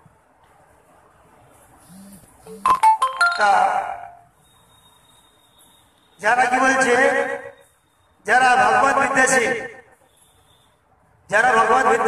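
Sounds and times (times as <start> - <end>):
person speaking: 1.9 - 4.2.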